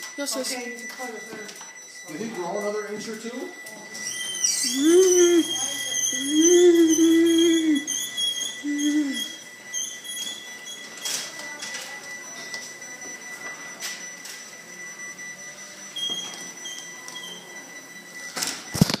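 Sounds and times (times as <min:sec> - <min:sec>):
garage door opener whirring: 0:00.0 - 0:19.0.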